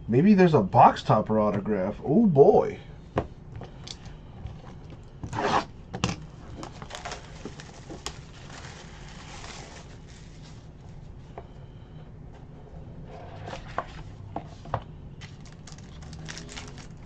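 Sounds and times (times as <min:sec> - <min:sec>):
plastic crackling: 0:06.5 - 0:10.4, 0:15.2 - 0:17.0
plastic shrink wrap ripping: 0:06.6 - 0:10.3, 0:15.2 - 0:17.0.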